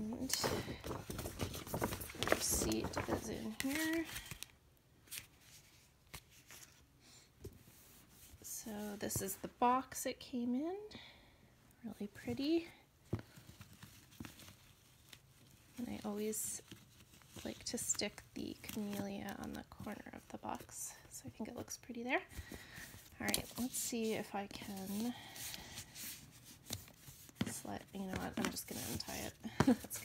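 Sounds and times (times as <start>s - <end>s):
ribbon and gift box rustling: 0.0s - 6.9s, 12.0s - 30.0s
faint handling of ribbon: 22.4s - 30.0s.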